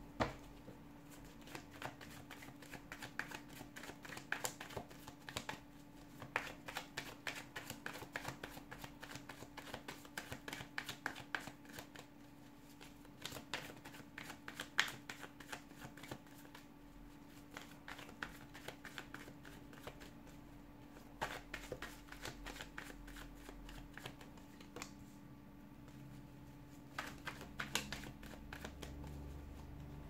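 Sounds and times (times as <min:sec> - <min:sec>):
faint steady hum: 0:00.0 - 0:30.0
cards shuffled by hand: 0:01.2 - 0:16.7, 0:17.3 - 0:20.1, 0:20.9 - 0:25.0, 0:26.6 - 0:30.0.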